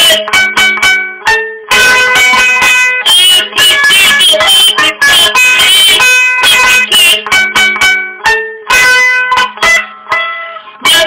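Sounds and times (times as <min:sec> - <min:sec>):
lute strummed chords: 0:00.0 - 0:11.0.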